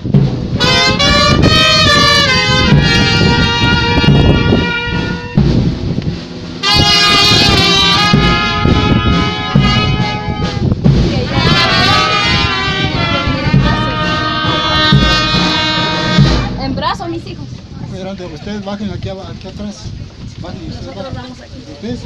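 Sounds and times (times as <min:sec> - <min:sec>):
brass band playing a march: 0:00.0 - 0:17.3
low beats: 0:00.0 - 0:20.8.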